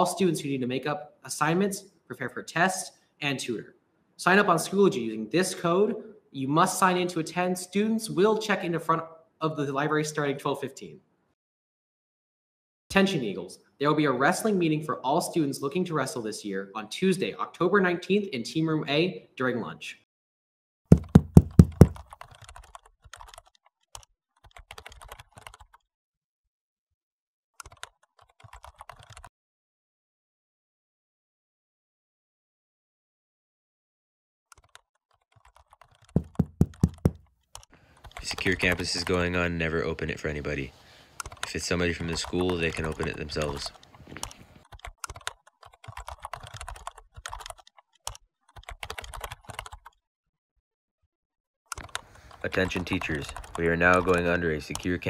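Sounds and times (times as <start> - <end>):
rapid knocking on door: 20.9 - 22.1, 36.2 - 37.2
faint irregular clicking: 51.7 - 54.9.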